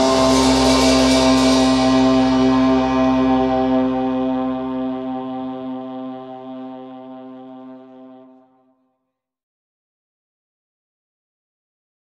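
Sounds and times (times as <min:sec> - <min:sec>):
held brass note: 0:00.0 - 0:08.8.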